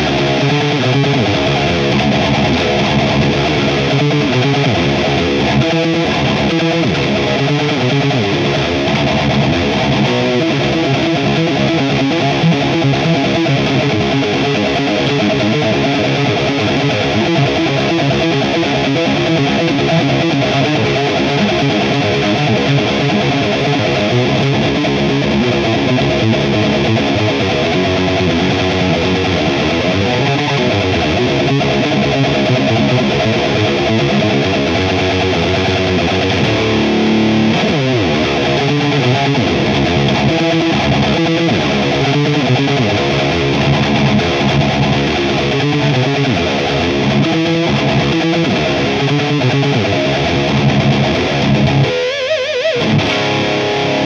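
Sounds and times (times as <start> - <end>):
distorted electric guitar metal riffs: 0.0 - 54.0
guitar slide down the neck: 33.9 - 54.0.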